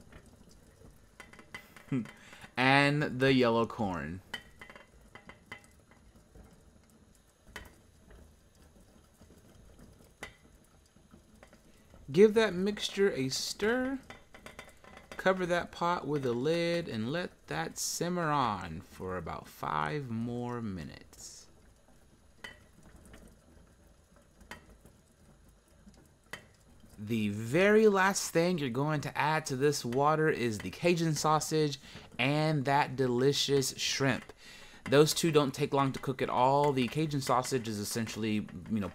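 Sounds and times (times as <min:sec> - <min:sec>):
stock pot simmering: 0:00.0 - 0:38.9.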